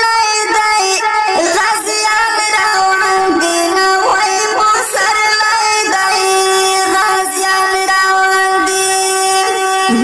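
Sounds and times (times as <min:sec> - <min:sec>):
person singing a long note: 0:06.0 - 0:10.0.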